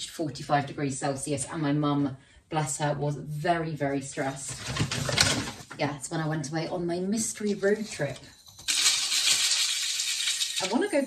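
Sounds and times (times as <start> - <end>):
grains pouring into plastic pot: 8.6 - 11.0.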